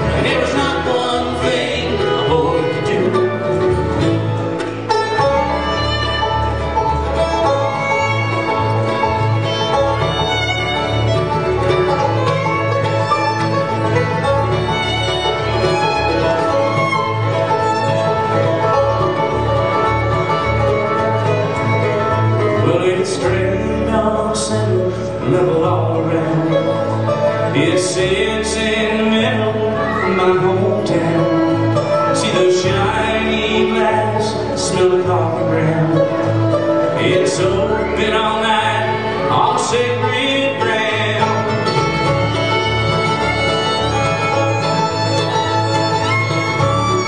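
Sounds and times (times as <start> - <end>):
bluegrass band playing: 0.0 - 47.0.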